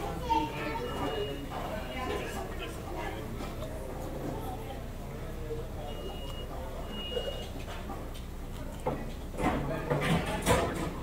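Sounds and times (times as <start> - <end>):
background chatter of voices: 0.0 - 11.0.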